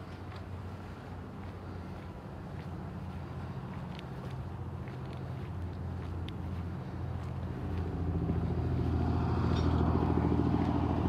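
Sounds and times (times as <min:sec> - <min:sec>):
vehicle engine running: 0:00.0 - 0:11.0.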